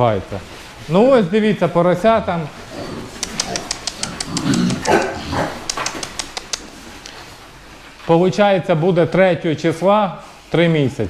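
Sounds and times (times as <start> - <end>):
young pigs grunting: 2.2 - 6.8
trotters clicking on slatted floor: 3.1 - 7.2.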